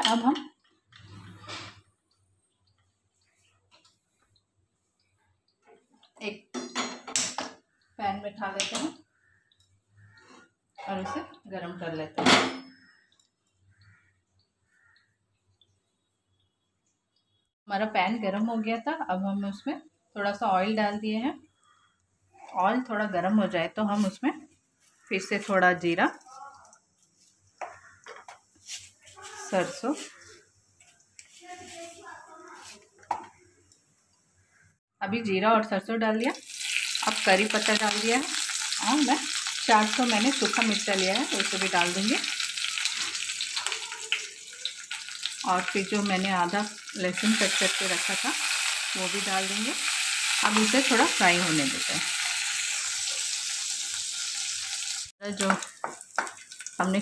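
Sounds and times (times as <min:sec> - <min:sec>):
woman speaking: 0:08.0 - 0:09.0, 0:10.8 - 0:12.2, 0:17.7 - 0:21.4, 0:22.4 - 0:24.4, 0:25.1 - 0:26.4, 0:29.2 - 0:30.1, 0:35.0 - 0:36.4, 0:37.0 - 0:42.2, 0:45.5 - 0:48.4, 0:49.0 - 0:49.8, 0:50.4 - 0:52.0, 0:55.2 - 0:55.6.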